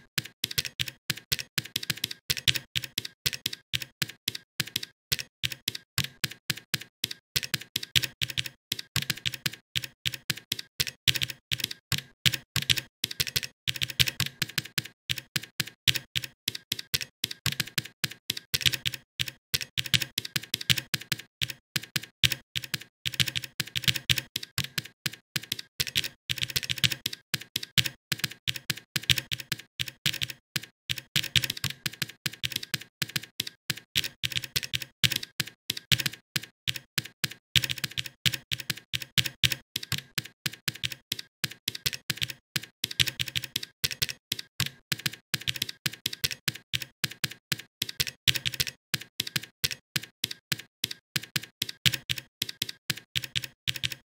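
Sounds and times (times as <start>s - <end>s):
typing on computer keyboard: 0.0s - 54.0s.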